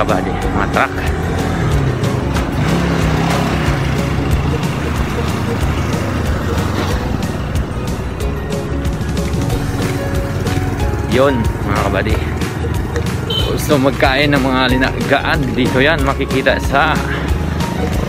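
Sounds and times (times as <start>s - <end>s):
background music: 0.0s - 18.0s
road traffic rumbling: 0.0s - 18.0s.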